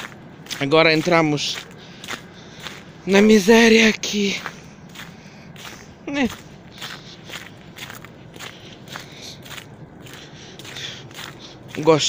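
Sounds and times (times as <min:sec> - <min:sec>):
footsteps in snow: 0:00.0 - 0:12.0.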